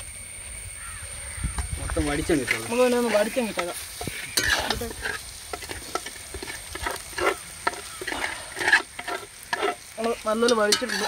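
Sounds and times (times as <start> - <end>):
meat sizzling: 0.2 - 11.0
ladle scraping a wok: 2.3 - 11.0.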